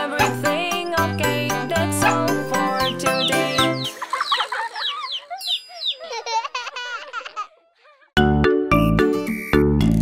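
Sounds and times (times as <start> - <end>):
cartoon chicks cheeping: 2.0 - 6.6.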